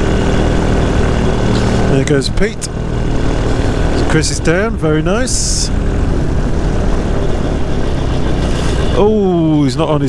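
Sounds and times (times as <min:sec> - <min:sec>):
paramotor engine running: 0:00.0 - 0:10.0.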